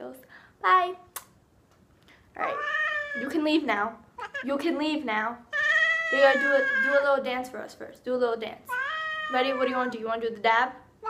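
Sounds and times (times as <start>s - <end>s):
cat meowing: 2.4s - 3.4s, 4.2s - 4.5s, 5.5s - 7.1s, 8.7s - 10.0s.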